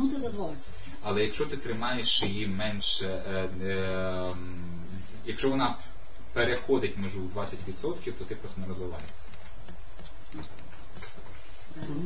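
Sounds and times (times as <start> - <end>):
person speaking: 0.0 - 12.0
room noise: 0.0 - 12.0.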